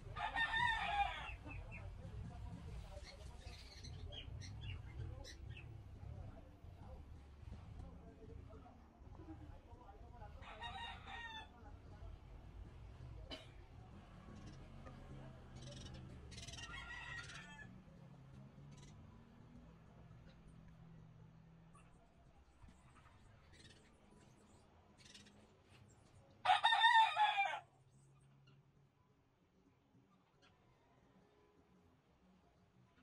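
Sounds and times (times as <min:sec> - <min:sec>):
rooster crowing: 0:00.2 - 0:01.4, 0:16.6 - 0:17.7, 0:26.4 - 0:27.6.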